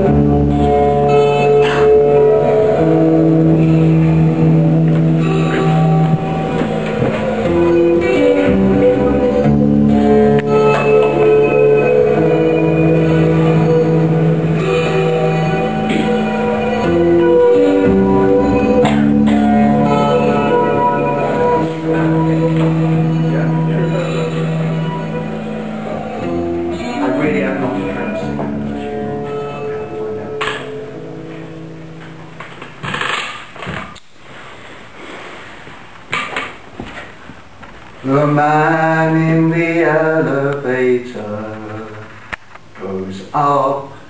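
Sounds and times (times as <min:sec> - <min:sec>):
acoustic guitar: 0:00.0 - 0:43.0.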